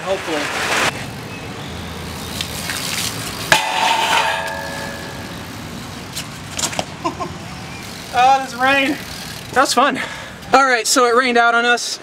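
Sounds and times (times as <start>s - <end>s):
bike riding on wet concrete: 0.0s - 11.0s
traffic: 0.0s - 12.0s
wind: 0.0s - 12.0s.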